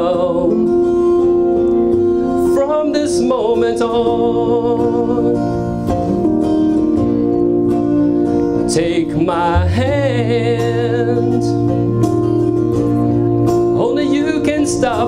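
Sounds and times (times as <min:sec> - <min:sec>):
man singing a ballad: 0:00.0 - 0:05.7, 0:08.6 - 0:12.1, 0:13.7 - 0:15.0
acoustic guitar: 0:00.0 - 0:15.0.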